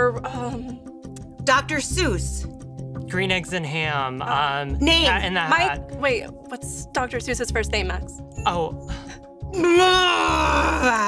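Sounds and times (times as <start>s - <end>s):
game show music: 3.1s - 9.2s
woman groaning: 9.5s - 11.0s.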